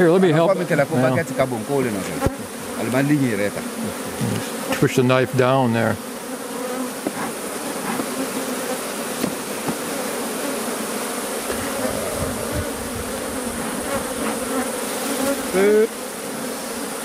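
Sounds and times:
honeybees buzzing: 0.0 - 17.0.

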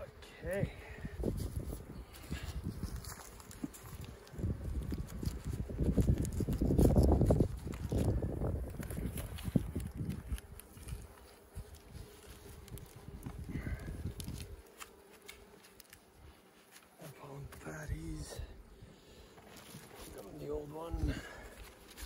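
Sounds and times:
clicks and rustles of handling: 1.7 - 16.9.

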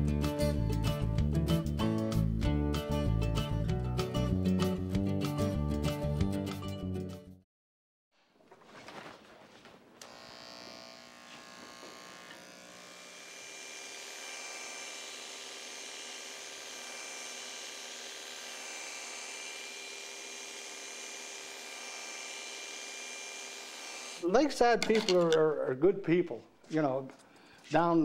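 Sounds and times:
electric hair clippers buzzing: 10.0 - 24.2.

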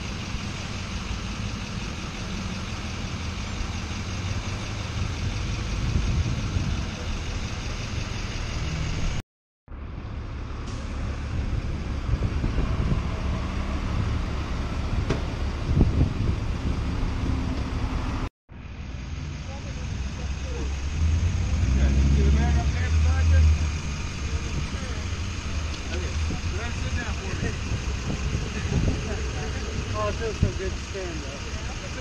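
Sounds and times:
low wind rumble: 0.0 - 32.0
street traffic: 0.0 - 32.0
vehicle engine running: 0.0 - 32.0.

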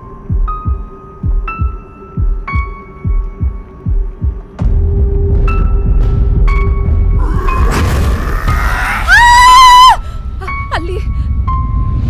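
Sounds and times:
slow heartbeat thumps: 0.1 - 8.2.

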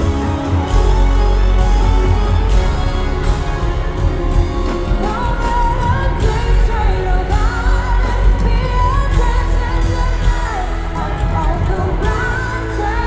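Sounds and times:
band with heavy bass: 0.0 - 13.0
woman singing pop song: 4.6 - 13.0.

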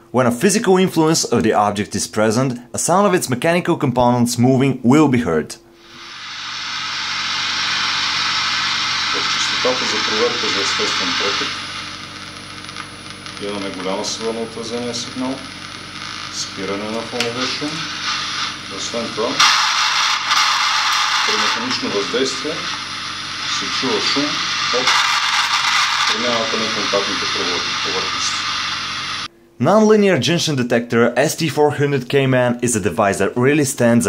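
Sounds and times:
static hiss: 5.6 - 30.6.

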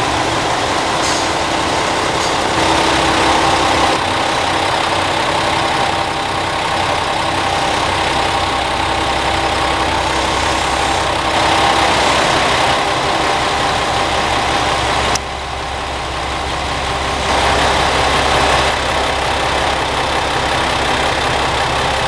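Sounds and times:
diesel railcar engines idling: 0.0 - 22.0.

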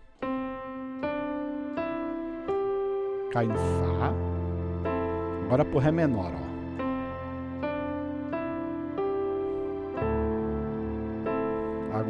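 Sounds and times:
piano chords and melody: 0.0 - 12.0.

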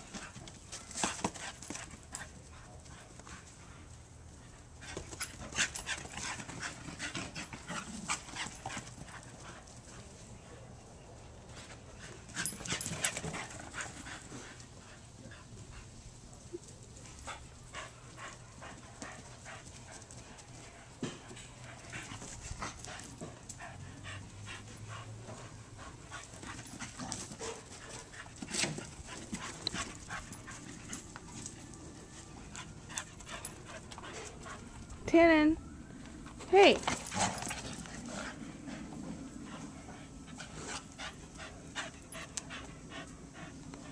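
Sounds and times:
dog panting: 17.2 - 35.0, 36.7 - 43.9.

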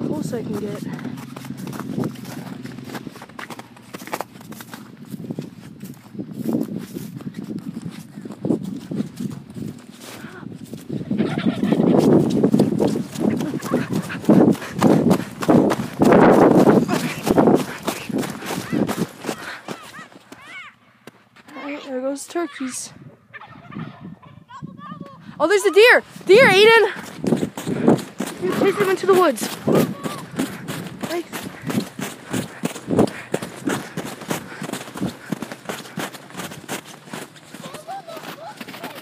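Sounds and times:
footsteps crunching on frozen grass: 0.0 - 22.5, 25.4 - 39.0.

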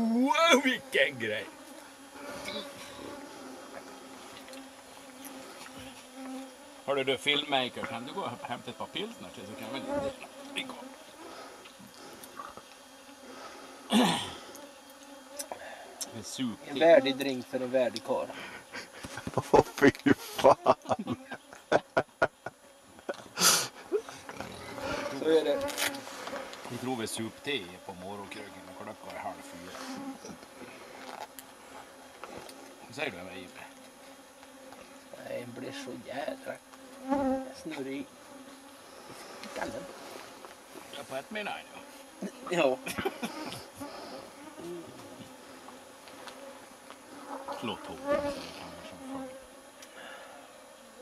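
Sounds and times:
man speaking: 0.0 - 1.5, 6.9 - 10.9, 47.6 - 49.2
mosquitoes buzzing: 0.0 - 51.0.

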